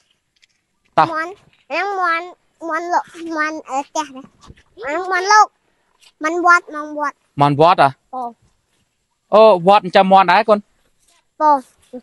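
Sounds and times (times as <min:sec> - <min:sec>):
young child speaking: 0:01.0 - 0:05.6, 0:06.2 - 0:07.2, 0:08.2 - 0:08.4, 0:11.4 - 0:12.0.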